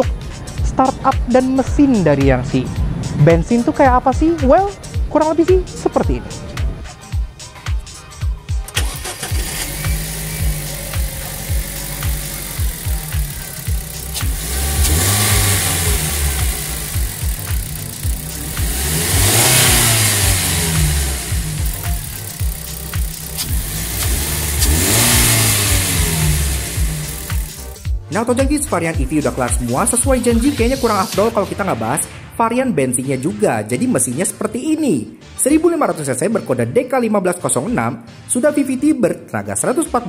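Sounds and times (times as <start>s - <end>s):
car engine starting and idling: 8.6s - 27.9s
engine revving: 8.7s - 27.9s.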